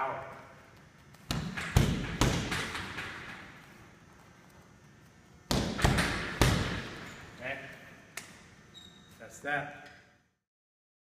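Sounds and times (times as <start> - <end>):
punches on heavy bag: 5.5 - 7.0.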